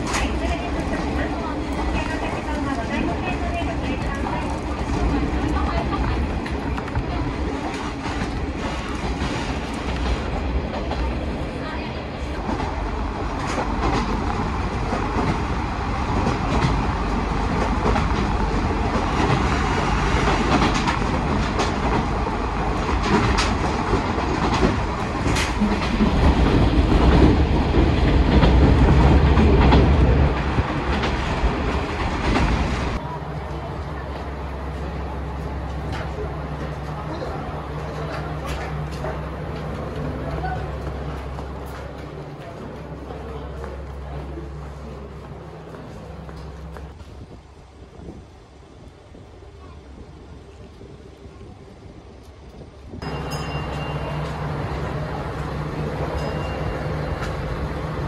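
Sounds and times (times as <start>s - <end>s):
train rumbling along track: 0.0s - 58.0s
wheels clicking over rail joints: 12.3s - 47.4s.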